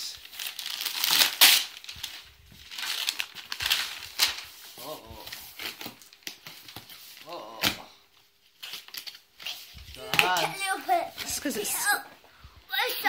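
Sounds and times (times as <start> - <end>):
wrapping paper tearing and crumpling: 0.0 - 7.8, 8.5 - 11.8.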